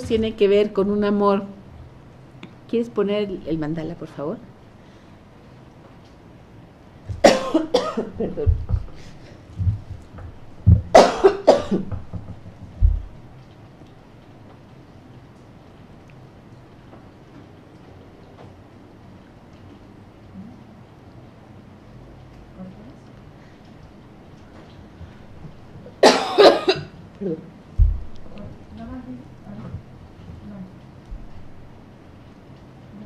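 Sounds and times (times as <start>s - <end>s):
woman coughing: 7.2s - 8.6s, 10.9s - 11.9s, 26.0s - 27.0s
low thump: 8.5s - 9.0s, 9.6s - 11.0s, 11.8s - 13.2s, 27.8s - 28.4s.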